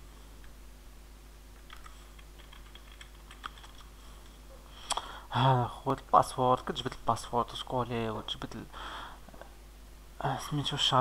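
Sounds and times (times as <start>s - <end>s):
computer keyboard typing: 1.6s - 3.9s.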